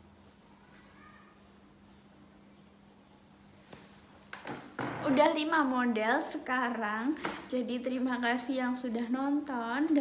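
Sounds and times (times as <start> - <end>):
faint steady hum: 0.0 - 10.0
woman speaking: 5.0 - 10.0.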